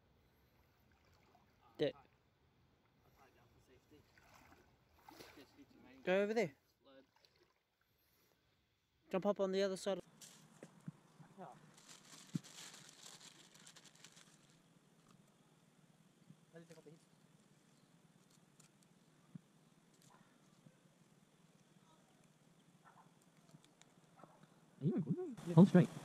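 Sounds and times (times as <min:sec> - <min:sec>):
soft splashing in stream: 0:00.6 - 0:01.7, 0:04.0 - 0:06.0, 0:06.9 - 0:07.9.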